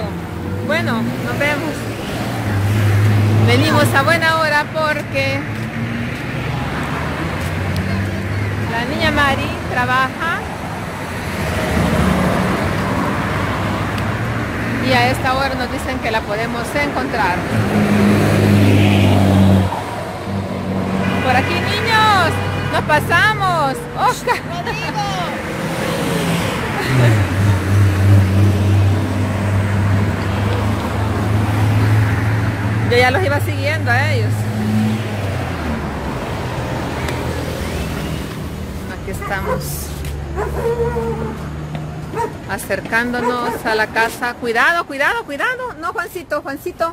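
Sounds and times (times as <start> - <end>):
voices: 0.0 - 5.8, 7.0 - 11.3, 14.6 - 17.8, 21.0 - 28.2, 32.7 - 34.8, 36.8 - 41.5, 42.1 - 46.9
car passing: 0.0 - 45.6
road noise: 0.0 - 46.9
truck driving by: 16.9 - 42.3.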